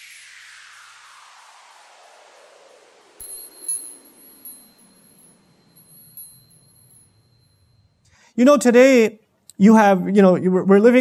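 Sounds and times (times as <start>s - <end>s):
light hit: 3.2s - 7.8s
sparkling chime-like shimmer: 3.2s - 8.1s.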